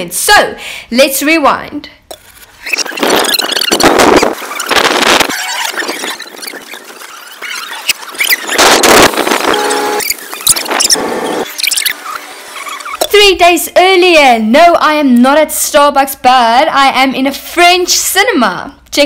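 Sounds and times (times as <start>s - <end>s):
garbled reversed audio warbling: 2.6s - 13.1s.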